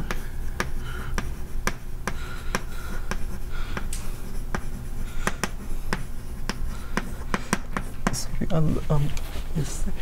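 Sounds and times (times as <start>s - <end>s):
chalk tapping on blackboard: 0.0s - 8.8s.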